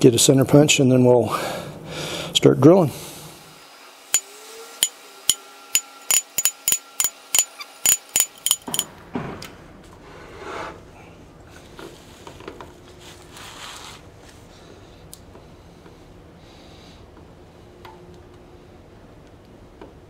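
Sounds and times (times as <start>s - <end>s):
drill knocking on metal table: 4.2s - 8.9s.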